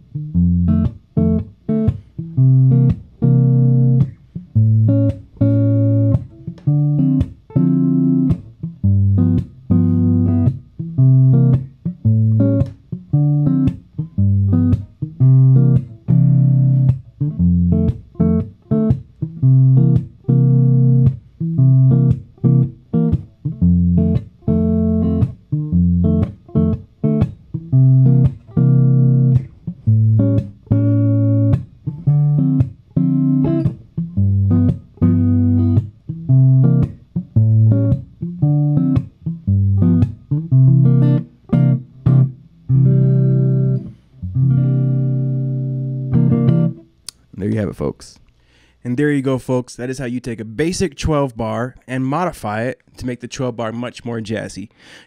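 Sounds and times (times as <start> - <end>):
electric guitar blues chords: 0.0 - 47.4
muted guitar strums: 0.0 - 47.4.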